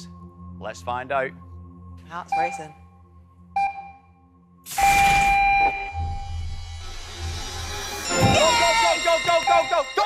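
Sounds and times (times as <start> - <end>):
tense music bed: 0.0 - 10.0.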